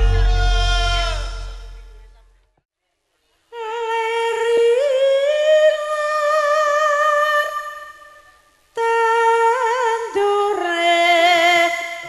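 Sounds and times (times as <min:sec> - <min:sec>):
woman singing a long note: 0:03.5 - 0:12.0.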